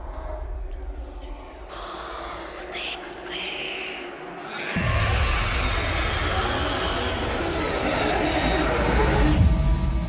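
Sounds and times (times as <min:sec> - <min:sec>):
breathy whispering voice: 0:00.5 - 0:06.4.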